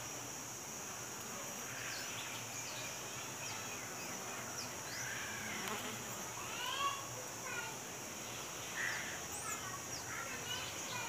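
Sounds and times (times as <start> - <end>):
honeybee colony humming: 0.0 - 11.0.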